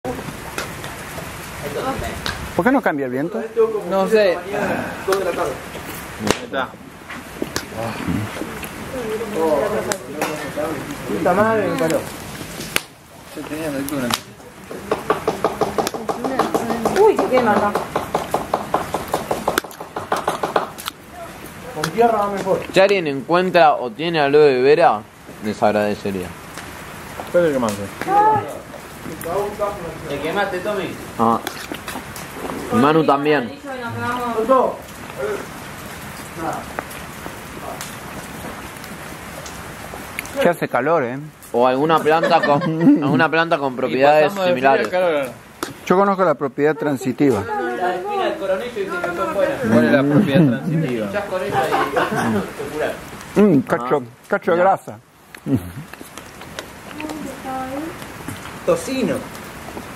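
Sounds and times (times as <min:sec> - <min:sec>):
steady hissing noise: 0:00.1 - 0:59.9
sharp knocks: 0:14.8 - 0:20.9.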